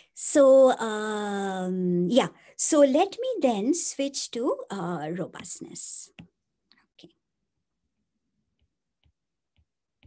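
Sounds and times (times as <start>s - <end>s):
stylus tapping tablet screen: 8.3s - 10.0s.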